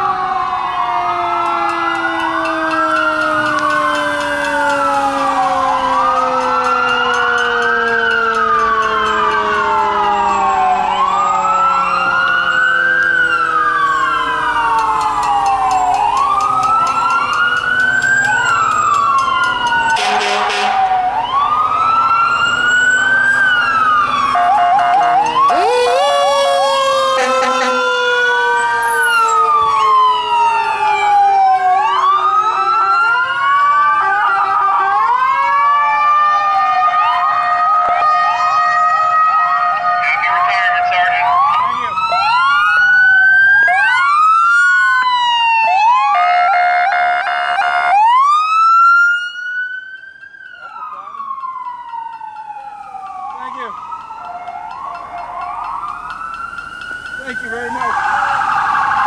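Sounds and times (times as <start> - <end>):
emergency vehicle sirens: 0.0 - 59.0
loud horn blast: 20.0 - 20.9, 25.6 - 28.0.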